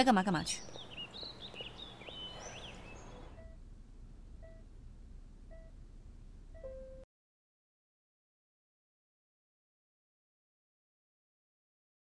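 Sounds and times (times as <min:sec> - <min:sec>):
birds chirping faintly: 0:00.0 - 0:03.6, 0:04.4 - 0:04.7
patient monitor beeping: 0:01.5 - 0:03.6, 0:04.4 - 0:04.7, 0:05.4 - 0:05.8, 0:06.5 - 0:07.0.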